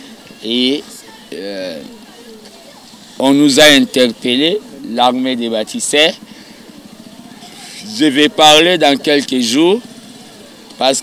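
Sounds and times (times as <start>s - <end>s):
faint street background noise: 0.0s - 11.0s
man speaking: 3.2s - 6.2s, 7.6s - 9.8s, 10.8s - 11.0s.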